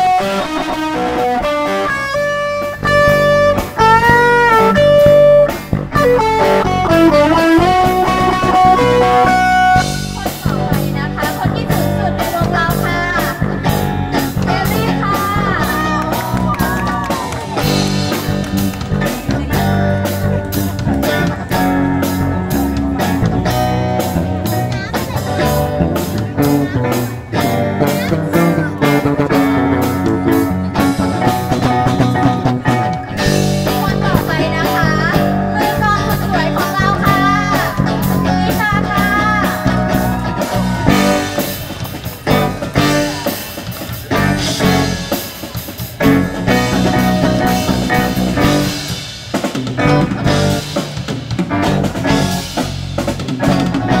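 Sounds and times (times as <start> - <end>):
wavering lead melody: 0.0 - 45.4
live rock band playing: 0.0 - 54.0.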